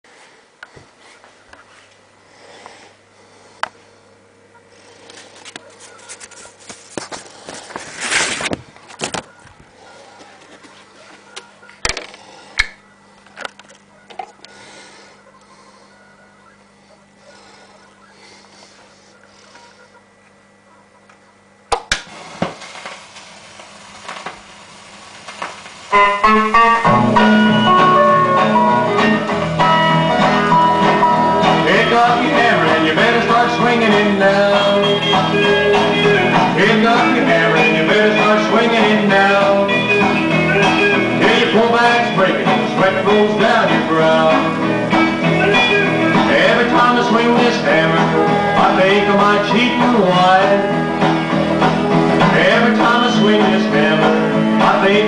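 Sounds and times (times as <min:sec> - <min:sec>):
vinyl hiss and crackle: 0:00.1 - 0:55.0.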